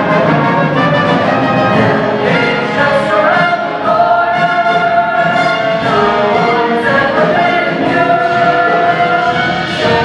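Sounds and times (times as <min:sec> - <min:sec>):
band accompaniment: 0:00.0 - 0:10.0
chorus singing: 0:00.0 - 0:10.0.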